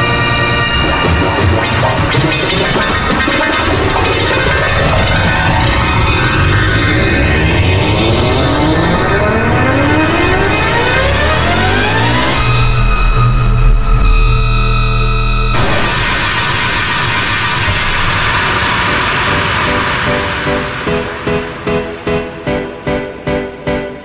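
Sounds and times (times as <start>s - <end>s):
dense piano notes with reverb: 0.0s - 24.0s.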